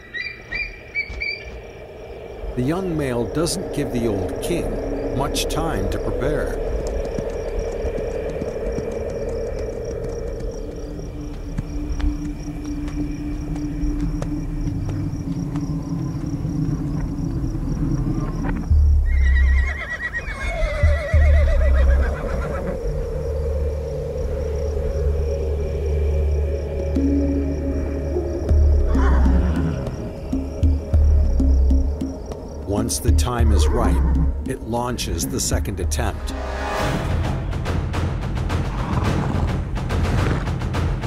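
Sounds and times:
heavy low rumble: 0:00.8 - 0:19.0
sustained low music notes: 0:00.8 - 0:19.1, 0:22.7 - 0:38.7
horse whinnying: 0:19.0 - 0:22.8
falling animal call: 0:28.8 - 0:30.1.

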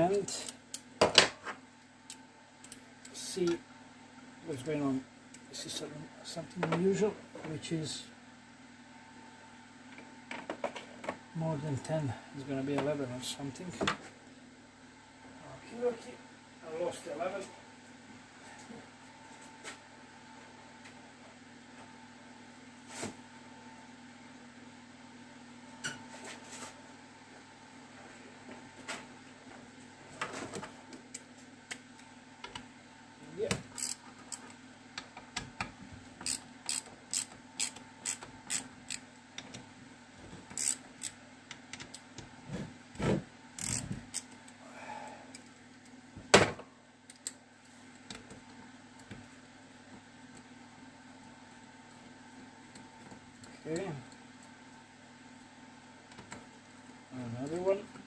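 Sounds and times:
faint steady hum: 0:00.0 - 0:58.0.

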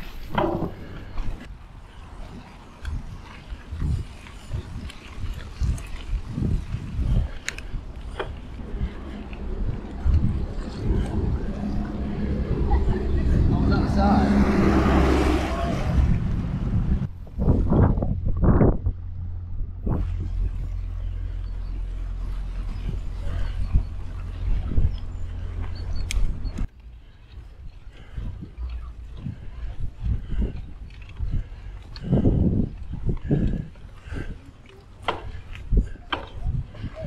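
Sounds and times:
bicycle tyres rolling on path: 0:00.0 - 0:37.0
wind buffeting microphone: 0:00.0 - 0:37.0.

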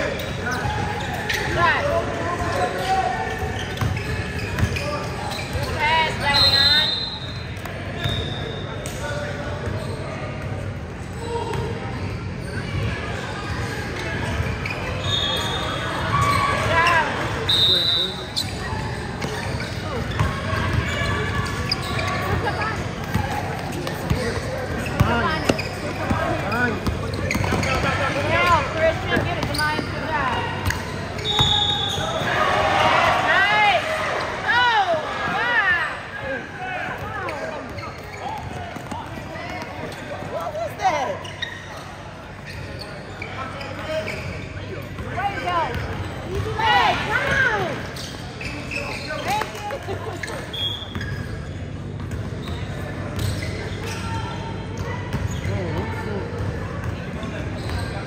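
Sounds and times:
sneaker squeaks: 0:00.0 - 0:58.0.

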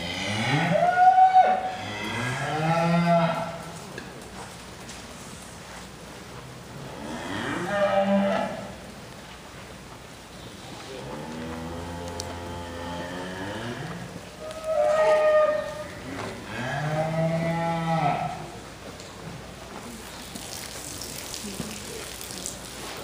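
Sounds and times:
cattle mooing: 0:11.0 - 0:18.4.

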